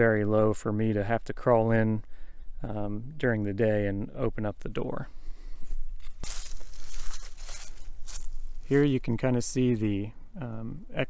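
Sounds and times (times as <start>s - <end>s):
footsteps in dry grass and leaves: 5.2s - 9.0s.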